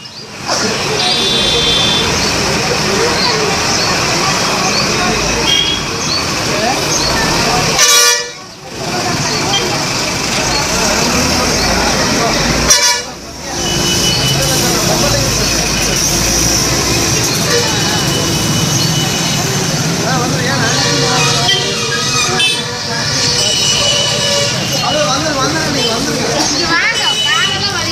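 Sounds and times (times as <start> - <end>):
crowd chatter: 0.0 - 27.9
street traffic: 0.0 - 27.9
vehicle horns tooting: 0.5 - 2.4, 5.4 - 6.0, 7.7 - 8.6, 12.6 - 15.1, 16.0 - 19.6, 20.7 - 27.8.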